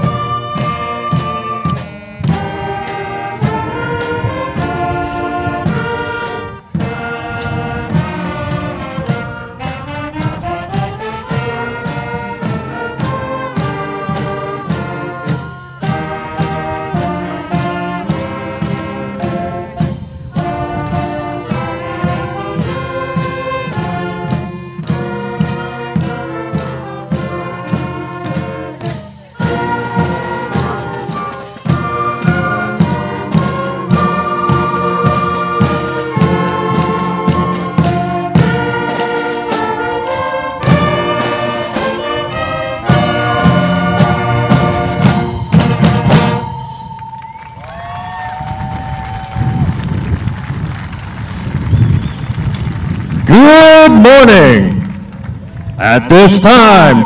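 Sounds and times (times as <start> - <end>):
concert band playing processional: 0.0 - 57.0.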